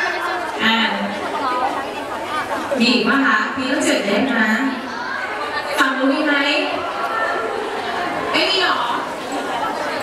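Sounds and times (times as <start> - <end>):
overlapping chatter in a hall: 0.0 - 10.0.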